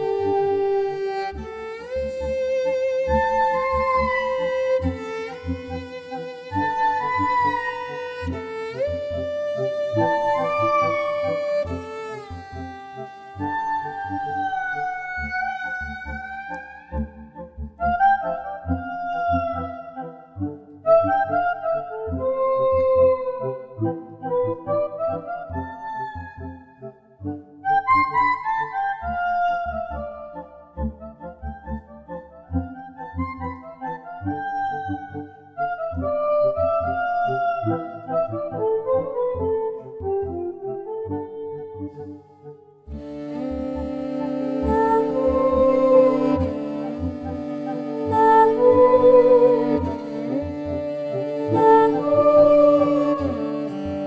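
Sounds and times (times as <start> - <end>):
wind instrument bending long notes: 0.0 - 20.0, 40.9 - 54.0
bowed fiddle pulsing rhythm: 0.0 - 54.0
low pulsing accompaniment: 42.9 - 54.0.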